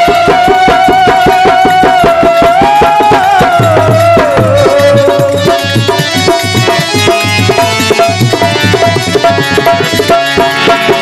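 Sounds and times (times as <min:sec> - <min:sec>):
man singing long high note: 0:00.0 - 0:05.9
fast hand drum strokes: 0:00.0 - 0:11.0.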